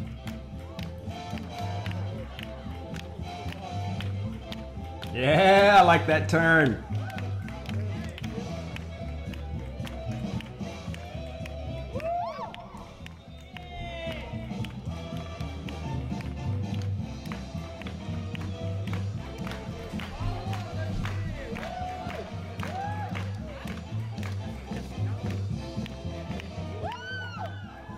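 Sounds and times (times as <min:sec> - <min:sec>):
fast swing music: 0:00.0 - 0:27.9.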